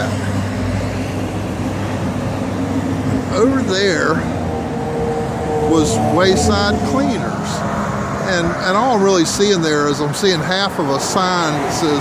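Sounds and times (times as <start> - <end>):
road traffic rush: 0.0 - 12.0
vehicle passing: 0.0 - 12.0.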